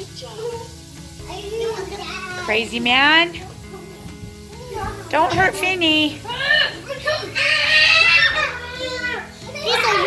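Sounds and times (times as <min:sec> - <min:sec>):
children yelling and squealing: 0:00.0 - 0:02.5, 0:06.2 - 0:10.0.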